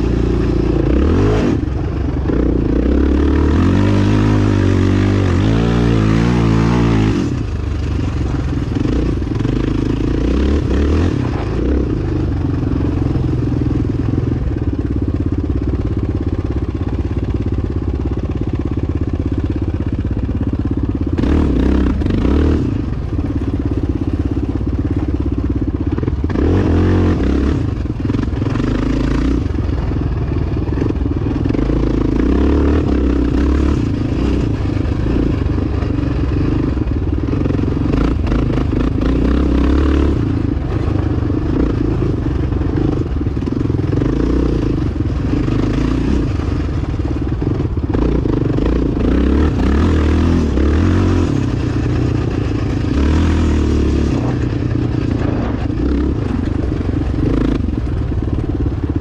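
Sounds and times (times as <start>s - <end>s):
dirt bike engine revving: 0.0s - 14.6s, 21.0s - 59.0s.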